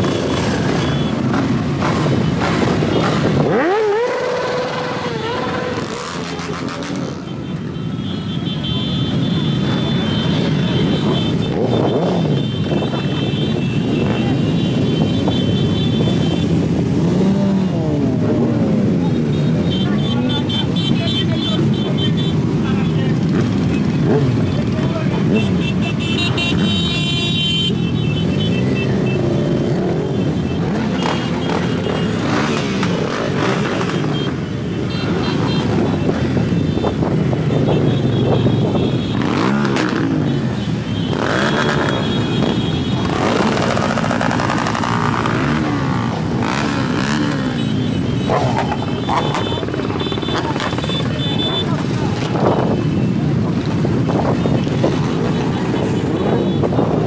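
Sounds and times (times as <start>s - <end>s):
motorcycles idling and revving: 0.0s - 57.0s
crowd voices: 8.6s - 26.9s, 28.2s - 57.0s.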